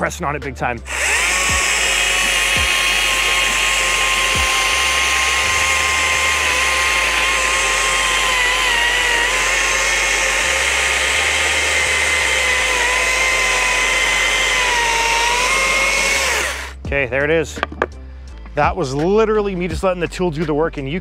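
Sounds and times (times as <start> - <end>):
cordless chainsaw cutting wood: 0.8 - 16.9.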